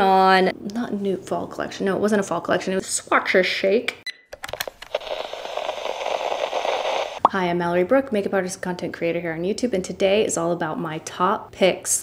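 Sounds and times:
sharp clicks and crackles: 4.4 - 7.2
steady hiss: 4.9 - 7.2.

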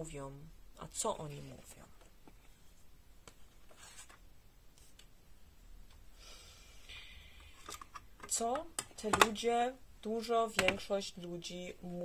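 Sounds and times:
paper card rustling: 3.4 - 4.2.

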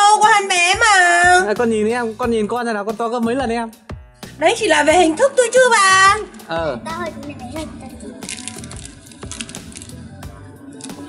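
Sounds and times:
background music: 0.0 - 11.0
snack wrappers crinkling: 6.2 - 6.5, 7.5 - 11.0.

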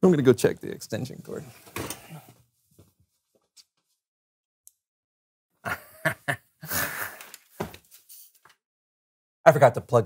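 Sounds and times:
man laughing: 5.6 - 7.3.

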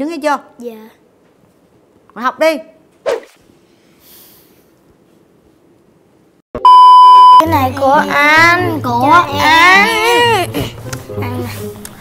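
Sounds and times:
loud steady high beep: 6.6 - 7.5.

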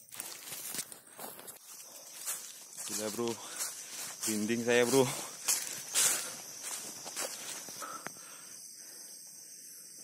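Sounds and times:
footsteps through vegetation: 0.0 - 8.0
man's voice: 2.9 - 5.4.

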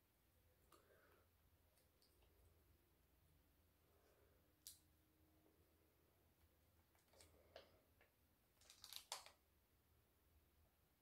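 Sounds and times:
sheet mask rustling and clicking: 8.5 - 9.4.

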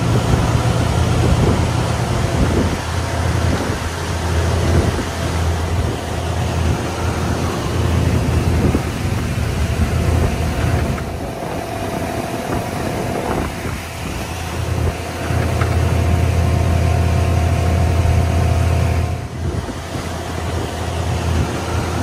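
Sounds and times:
boat engine running: 0.0 - 22.0
water rushing past hull: 0.0 - 22.0.

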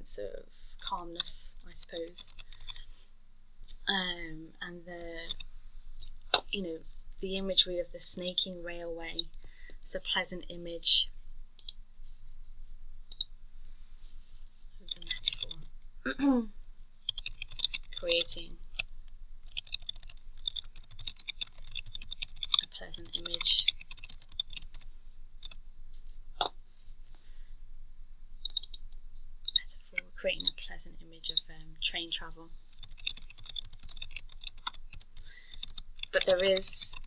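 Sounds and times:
computer mouse clicking: 11.6 - 11.8, 13.1 - 13.3, 14.9 - 15.6, 17.1 - 18.9, 19.5 - 25.6, 28.4 - 28.8, 29.4 - 29.7, 32.8 - 37.0.

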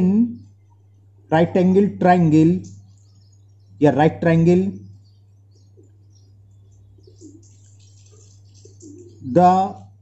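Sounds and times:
soft bird calls: 0.0 - 10.0.

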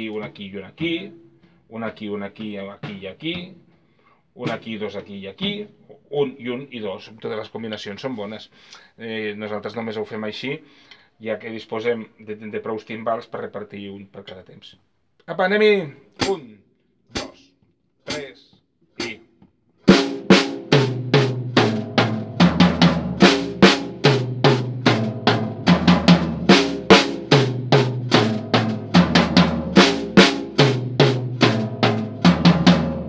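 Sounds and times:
drum kit playing: 17.2 - 17.4, 19.0 - 19.2, 19.8 - 33.0.

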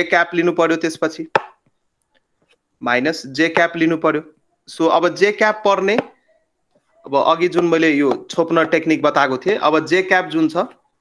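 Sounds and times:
sharp tap: 1.3 - 1.7
man's voice: 7.1 - 10.8.

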